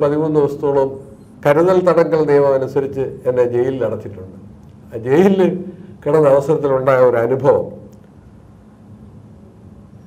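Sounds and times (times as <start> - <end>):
man speaking: 0.0 - 7.9.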